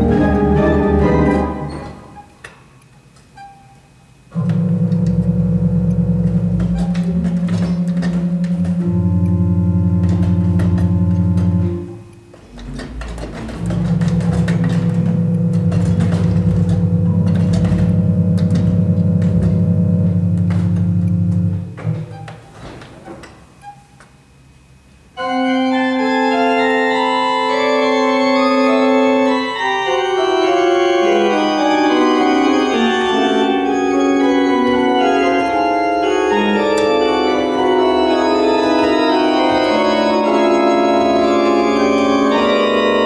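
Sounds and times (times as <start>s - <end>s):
pipe organ dissonant chord: 0.0s - 2.2s, 4.3s - 21.8s, 25.2s - 43.0s
faint organ note: 4.3s - 12.1s, 13.6s - 21.8s.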